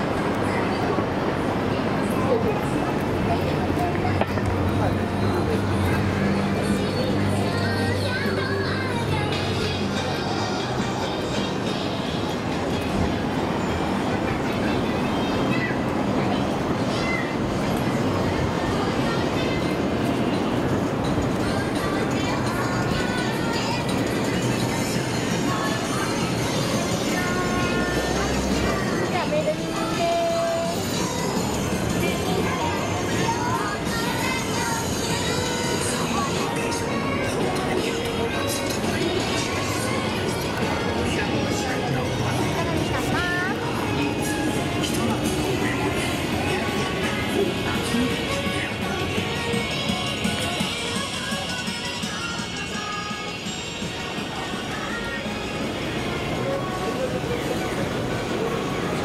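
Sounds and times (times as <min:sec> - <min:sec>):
music from shop loudspeakers: 0:00.0 - 0:59.0
passers-by talking: 0:00.0 - 0:59.0
street rumble: 0:00.0 - 0:59.0.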